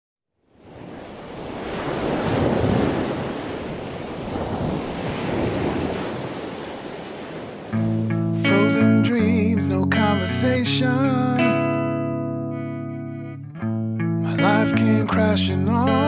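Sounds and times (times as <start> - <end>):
ocean waves washing in: 0.4 - 8.1
acoustic guitar: 7.8 - 16.0.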